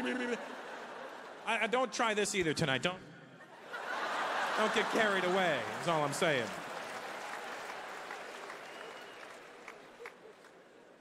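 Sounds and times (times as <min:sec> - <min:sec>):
large audience applauding: 0:03.7 - 0:11.0.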